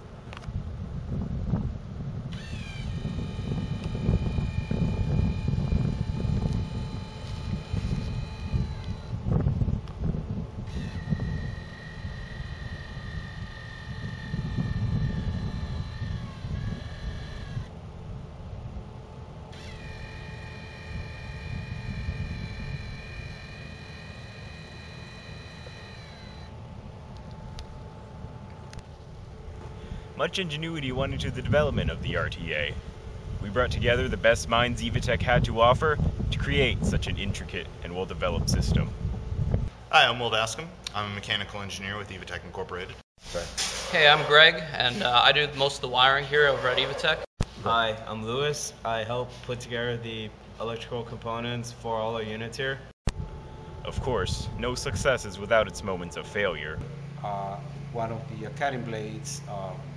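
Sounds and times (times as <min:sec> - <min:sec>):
wind buffeting microphone: 0:00.3 - 0:20.1, 0:27.2 - 0:39.7
high whine sliding down in pitch: 0:02.3 - 0:17.7, 0:53.1 - 0:59.8.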